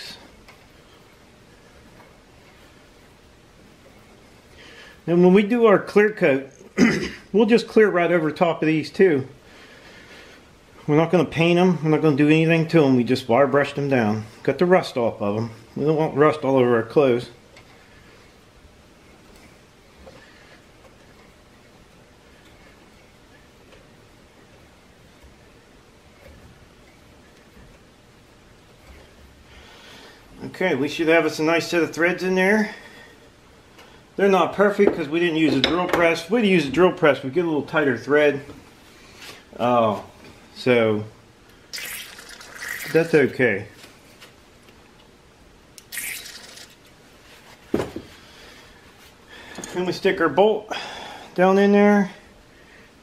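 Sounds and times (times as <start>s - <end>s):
low hiss: 0.0s - 53.0s.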